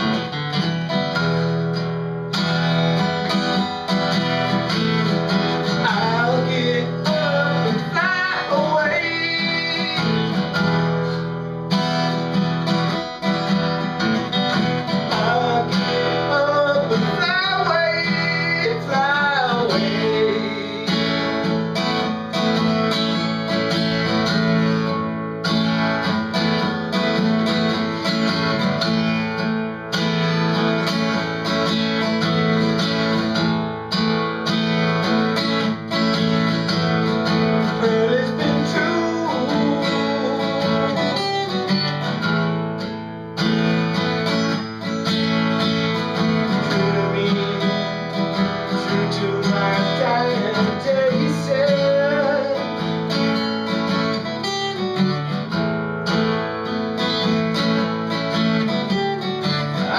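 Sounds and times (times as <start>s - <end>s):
solo acoustic guitar: 0.0s - 59.9s.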